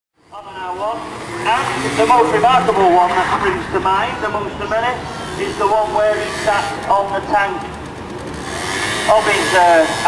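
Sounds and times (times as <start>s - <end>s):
commentator speaking: 0.4s - 7.7s, 9.1s - 10.0s.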